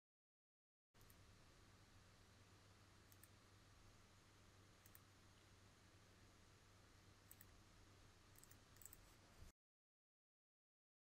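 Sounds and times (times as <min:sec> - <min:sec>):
faint low hum: 0:01.0 - 0:09.5.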